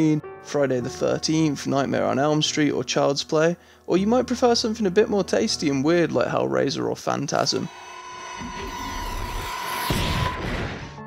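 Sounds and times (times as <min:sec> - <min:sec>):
high whine of flying object: 0:07.5 - 0:11.0
sudden hit: 0:07.7 - 0:11.0.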